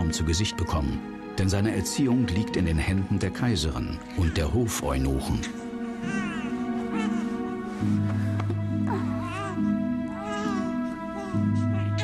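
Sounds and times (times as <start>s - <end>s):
background music with held tones: 0.0s - 12.0s
newborn baby crying: 4.1s - 7.9s, 8.8s - 12.0s.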